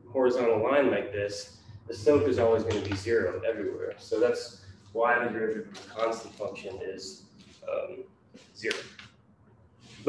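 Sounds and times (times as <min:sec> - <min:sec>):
man speaking a word: 0:00.0 - 0:07.1, 0:07.7 - 0:08.0.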